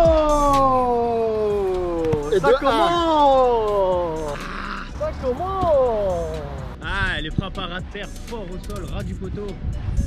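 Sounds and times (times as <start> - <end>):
person exclaiming ooh: 0.0 - 4.9
person exclaiming ah: 0.0 - 6.4.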